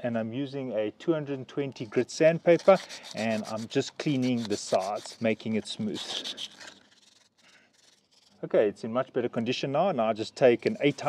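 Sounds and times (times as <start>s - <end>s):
sandpaper rubbing metal shaft: 2.0s - 8.4s.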